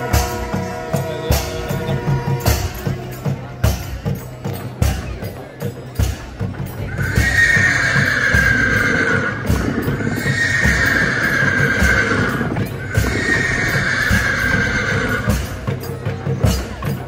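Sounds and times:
festival drum beats: 0.0 - 17.0
wind instrument held notes: 0.0 - 17.0.

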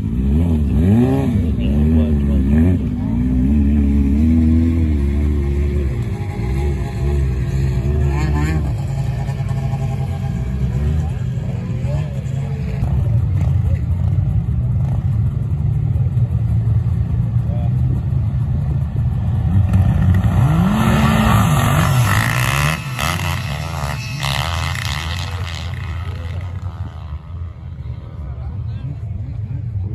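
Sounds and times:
motorcycle engine revving: 0.0 - 28.6
snowmobile engines: 0.0 - 29.9
voices: 0.5 - 19.1, 20.1 - 29.9.

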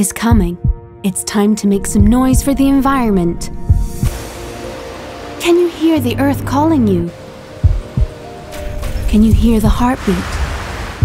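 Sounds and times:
soft music with held tones: 0.0 - 10.0
heartbeat thumps: 0.2 - 0.9, 1.8 - 4.4, 7.6 - 8.2, 9.1 - 9.9.

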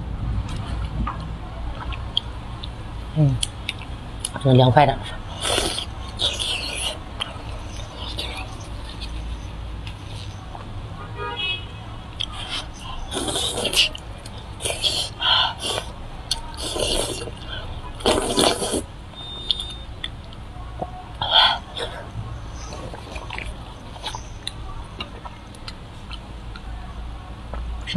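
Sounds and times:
steady low hum: 0.0 - 27.9
wet chewing mouth sounds: 3.4 - 4.4, 5.0 - 10.7, 12.2 - 26.7.

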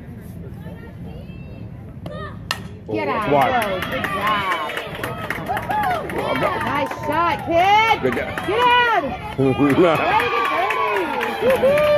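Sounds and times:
spectators' voices: 0.0 - 11.9
bat cracking a ball: 2.4 - 2.8.

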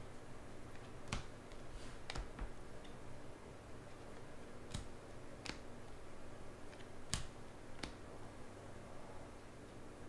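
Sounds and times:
trading cards snapping: 0.8 - 2.6, 4.2 - 5.7, 6.7 - 8.0.

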